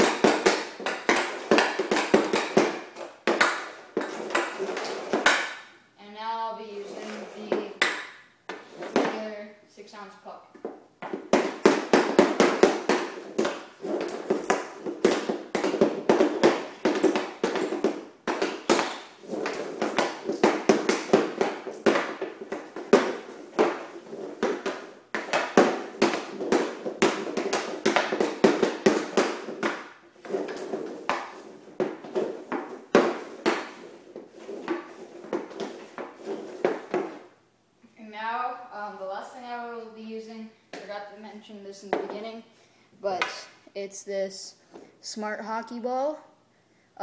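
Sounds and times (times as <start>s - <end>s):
hockey stick clacking a puck: 0.0s - 5.7s, 7.0s - 9.3s, 10.6s - 37.3s, 41.9s - 42.3s.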